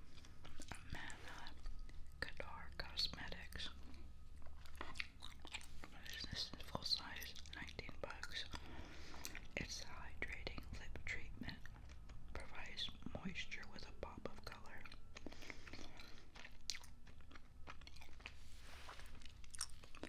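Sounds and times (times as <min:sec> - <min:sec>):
gum chewing wet smacks: 0:00.0 - 0:02.2, 0:03.9 - 0:09.6, 0:14.2 - 0:18.4, 0:19.1 - 0:20.0.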